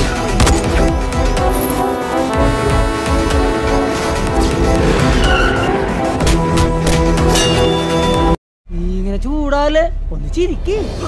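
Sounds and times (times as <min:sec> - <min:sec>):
film score music: 0:00.0 - 0:08.4.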